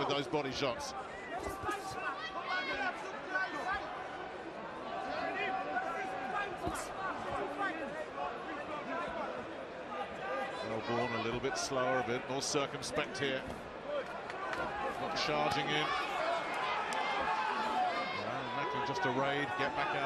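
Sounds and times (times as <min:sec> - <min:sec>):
crowd shouting: 0:00.9 - 0:12.0, 0:13.8 - 0:20.0.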